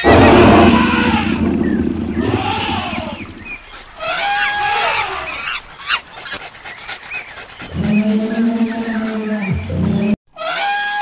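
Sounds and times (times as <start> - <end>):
long held animal call: 2.2 - 9.3.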